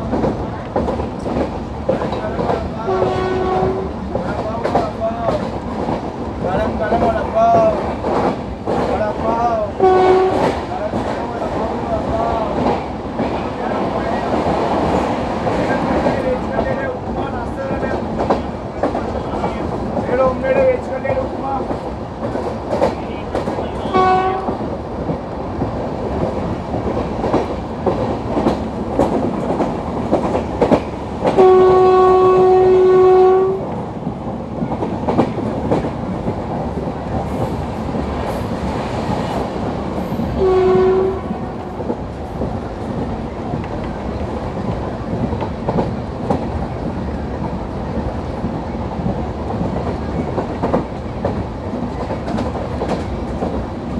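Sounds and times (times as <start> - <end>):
train wheels clattering: 0.0 - 11.8, 12.4 - 53.9
locomotive horn blasts: 2.9 - 3.9, 9.8 - 10.5, 23.8 - 24.6, 31.4 - 33.6, 40.4 - 41.4.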